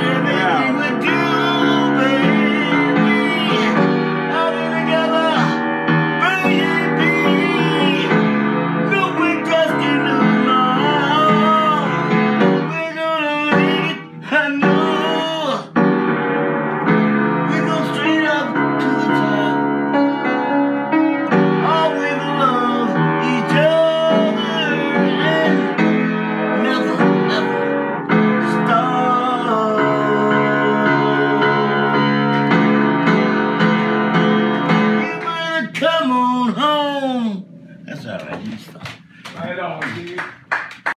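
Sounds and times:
man singing: 0.0 - 15.8, 17.5 - 19.6, 21.6 - 27.6, 28.4 - 32.2
piano: 0.0 - 40.9.

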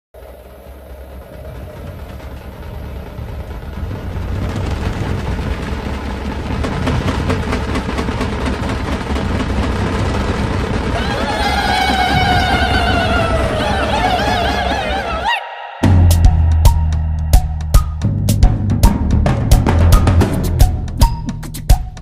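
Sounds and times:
rushing noise: 0.2 - 21.2
deep steady rumble: 0.2 - 22.0.

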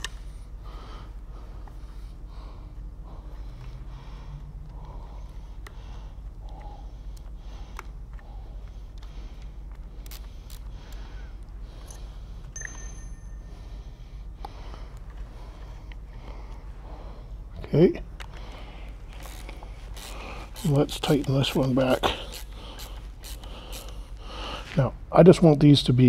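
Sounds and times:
person breathing: 0.0 - 20.6, 21.5 - 24.8
steady low hum: 0.0 - 26.0.

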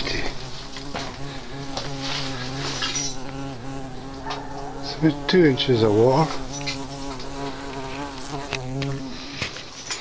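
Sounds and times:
steady low buzz: 0.0 - 9.4.

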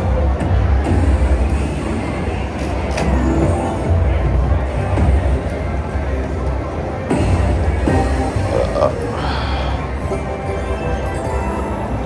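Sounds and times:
slot machine game music: 2.9 - 5.4, 7.1 - 12.0.

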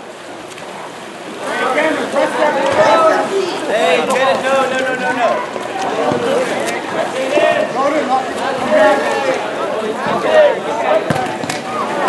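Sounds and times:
water splashing in a pool: 0.0 - 12.0
voices calling out: 0.8 - 12.0.

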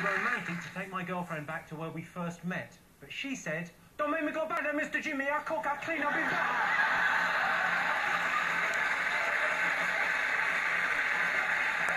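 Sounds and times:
audience applauding: 0.0 - 0.8, 6.0 - 11.9
audience laughing: 6.0 - 11.6.

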